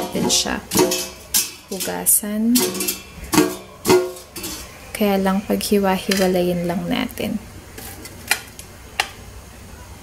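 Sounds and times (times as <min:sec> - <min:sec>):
metal tongs clinking on wire basket: 0:00.0 - 0:04.7, 0:06.0 - 0:06.4.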